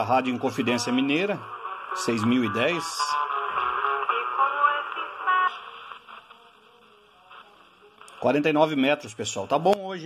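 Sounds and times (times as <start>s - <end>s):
radio music with singing: 0.0s - 10.0s.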